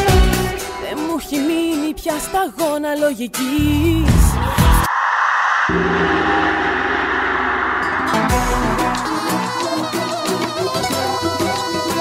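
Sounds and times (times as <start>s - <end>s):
synthesized noise wash: 3.8s - 9.6s
low held bass notes: 5.7s - 9.7s.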